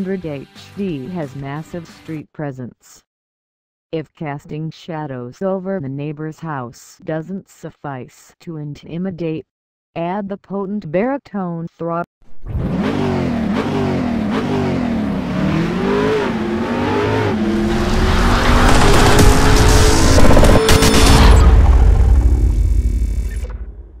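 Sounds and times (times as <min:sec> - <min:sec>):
engine revving: 0:12.3 - 0:23.7.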